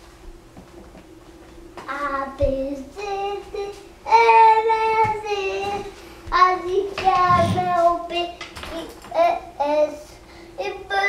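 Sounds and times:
child singing: 1.9 - 11.0.

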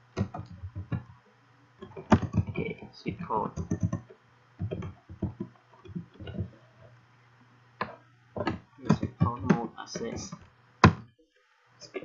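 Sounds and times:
low electrical hum: 0.0 - 12.0
computer keyboard typing: 0.2 - 1.1, 1.8 - 2.8, 3.4 - 6.6, 7.8 - 11.0.

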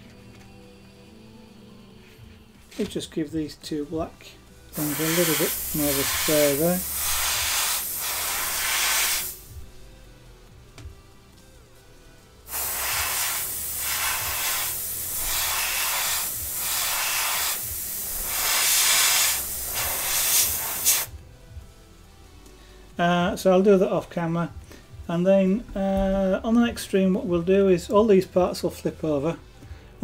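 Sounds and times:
airbrush spraying hiss: 4.7 - 9.6, 12.5 - 21.2.

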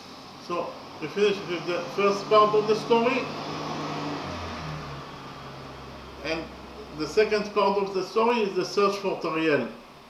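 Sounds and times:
low hum: 3.0 - 8.0.

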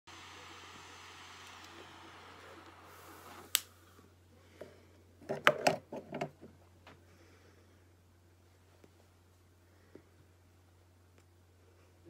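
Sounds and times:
lighter gas flame hissing: 0.1 - 4.7.

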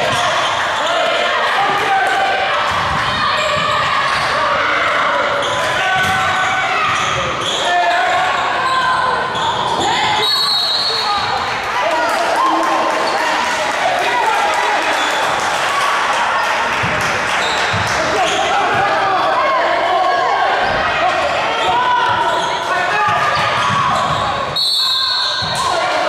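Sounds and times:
murmur of voices: 0.0 - 26.0
sneaker squeaks: 5.2 - 11.3, 17.4 - 18.8, 21.5 - 25.8.

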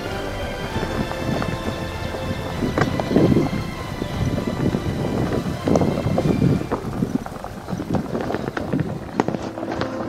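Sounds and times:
bike tyres crunching on dirt: 0.0 - 10.0
wind buffeting microphone: 0.0 - 10.0
bike knocking and rattling: 0.8 - 10.0.

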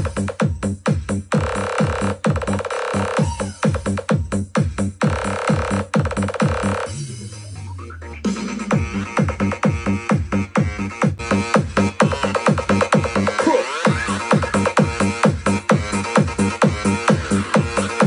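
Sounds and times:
electronic dance music: 0.0 - 18.0.

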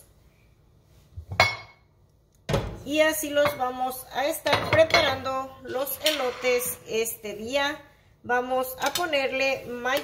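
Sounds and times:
kitchenware clinking on ceramic plate: 1.3 - 1.8, 4.5 - 6.9.

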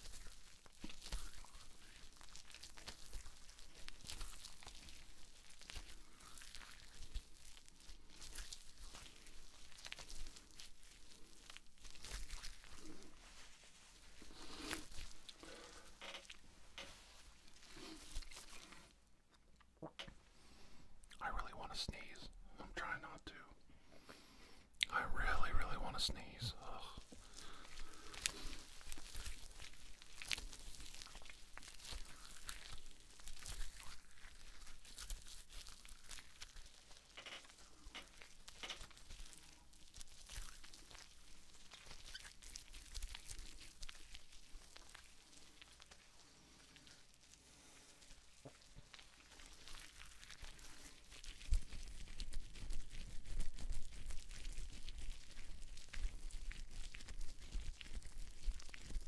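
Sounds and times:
crinkling handling sounds: 0.0 - 22.2, 26.0 - 59.0.

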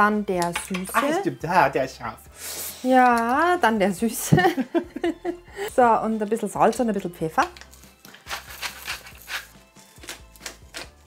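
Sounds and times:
pepper mill grinding: 7.4 - 11.0.

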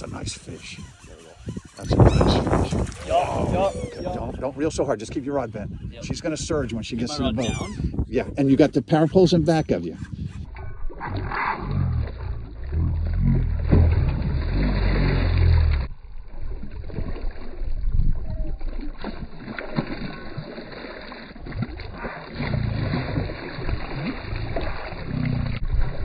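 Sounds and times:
fish thrashing and splashing: 0.6 - 3.8, 10.5 - 26.0
low rumble: 10.4 - 19.0.

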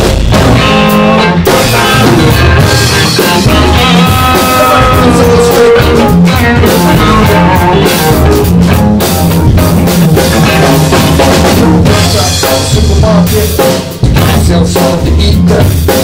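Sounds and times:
drum kit beat: 0.0 - 16.0
electric bass: 0.0 - 16.0
electric guitar: 0.0 - 16.0.

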